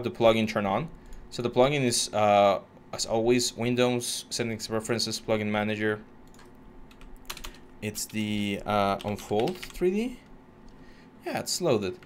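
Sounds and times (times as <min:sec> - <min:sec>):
computer keyboard clicks: 0:06.2 - 0:08.2, 0:08.9 - 0:09.8.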